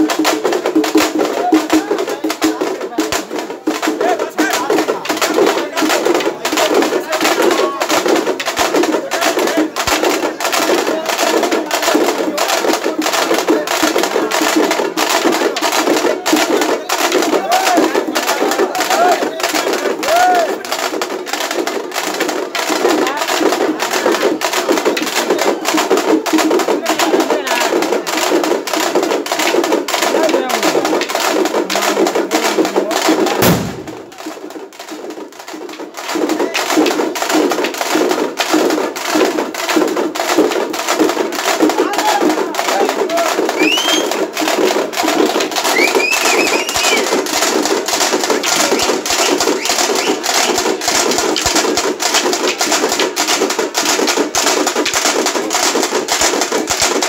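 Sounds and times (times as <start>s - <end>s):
crowd voices: 0.0s - 57.0s
rapid drum beating: 0.0s - 57.0s.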